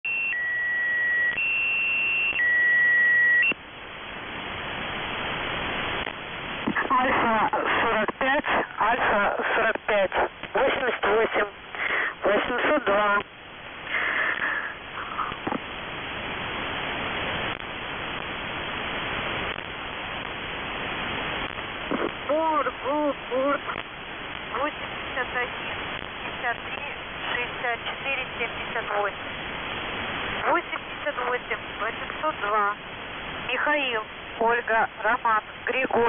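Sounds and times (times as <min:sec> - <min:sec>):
alternating two-tone beeps: 0:00.0 - 0:03.6
shortwave static: 0:00.0 - 0:36.0.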